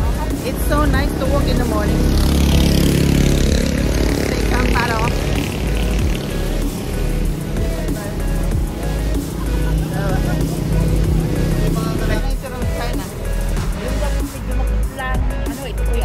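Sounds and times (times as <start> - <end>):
music with heavy bass beat: 0.0 - 16.0.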